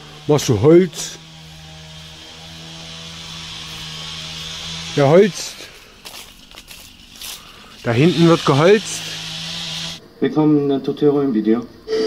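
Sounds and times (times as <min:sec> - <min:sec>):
distant motorised wood saw: 0:00.0 - 0:10.0.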